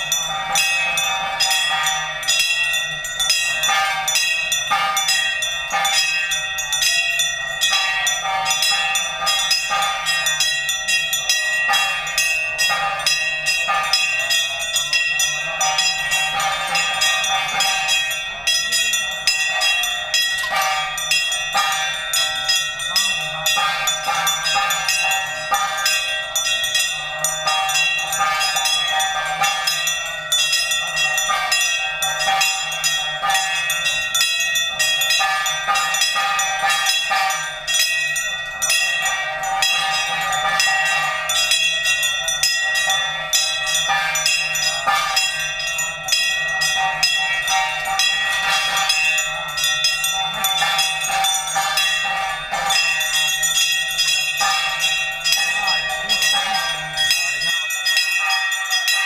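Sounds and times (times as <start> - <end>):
brass hand bells ringing: 0.0 - 59.0.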